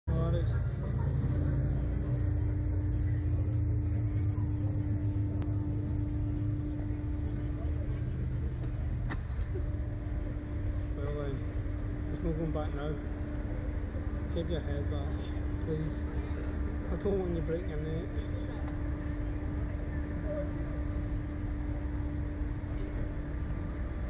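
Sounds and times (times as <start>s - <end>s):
ride machinery rumbling: 0.1s - 24.0s
steady hum: 0.1s - 24.0s.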